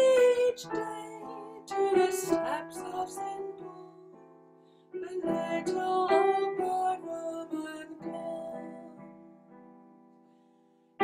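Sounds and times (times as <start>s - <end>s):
electronic piano chords: 0.0s - 11.0s.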